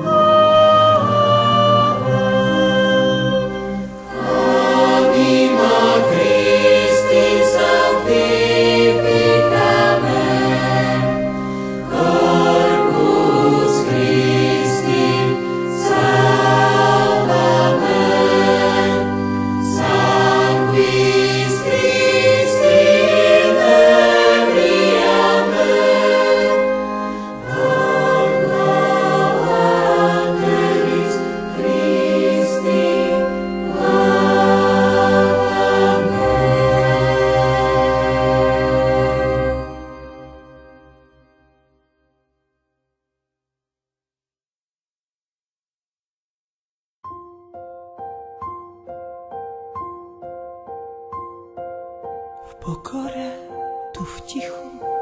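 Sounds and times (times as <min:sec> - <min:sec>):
choir singing in harmony: 0:00.0 - 0:40.9.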